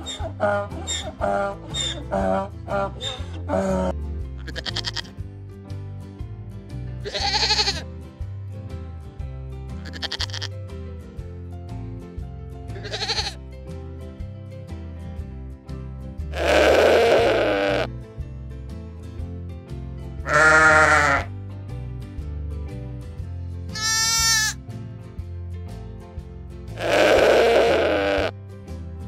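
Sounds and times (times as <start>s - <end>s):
goats bleating: 0.0s - 5.1s, 7.0s - 7.8s, 9.8s - 10.6s, 12.8s - 13.4s, 16.4s - 17.9s, 20.3s - 21.3s, 23.8s - 24.6s, 26.8s - 28.3s
background music with steady beat: 0.0s - 29.0s.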